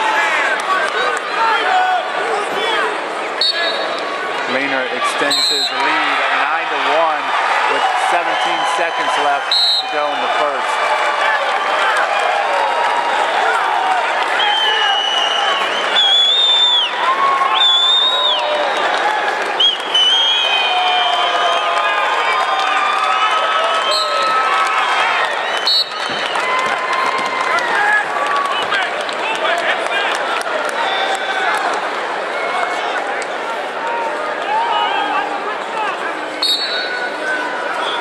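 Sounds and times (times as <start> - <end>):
applause: 0.0 - 1.6, 5.8 - 34.6
spectators shouting and cheering: 0.0 - 38.0.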